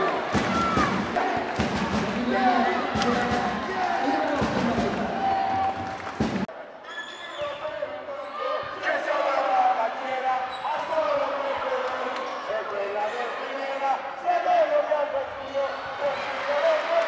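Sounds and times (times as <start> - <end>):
crowd din: 0.0 - 6.8.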